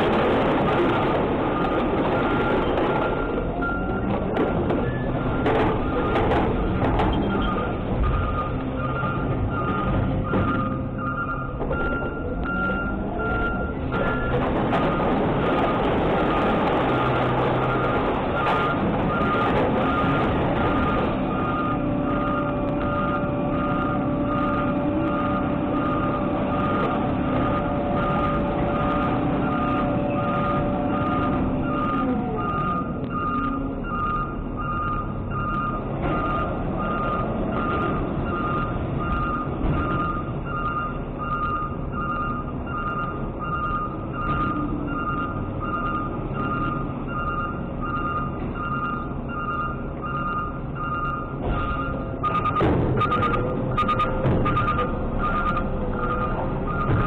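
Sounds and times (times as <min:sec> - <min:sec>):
diesel engine running: 0:00.0 - 0:57.0
truck backup alarm beeping: 0:00.0 - 0:57.0
truck whine gliding down: 0:00.0 - 0:57.0.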